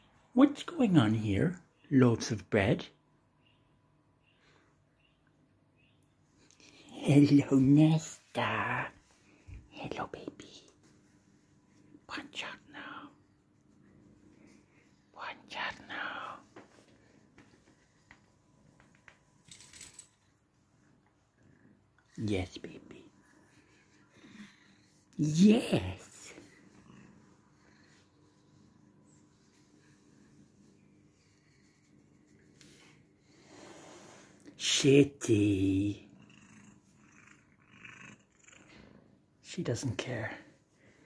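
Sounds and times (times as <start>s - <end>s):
quiet metallic jingle: 19.4s - 20.3s
cat purring: 21.3s - 34.3s, 35.6s - 39.3s.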